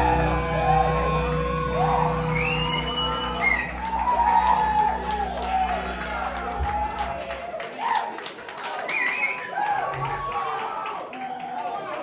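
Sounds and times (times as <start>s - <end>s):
crowd whooping and shouting: 0.0s - 12.0s.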